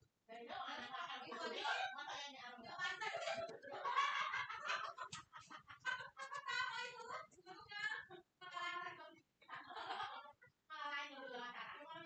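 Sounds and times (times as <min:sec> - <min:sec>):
voices: 0:00.3 - 0:12.0.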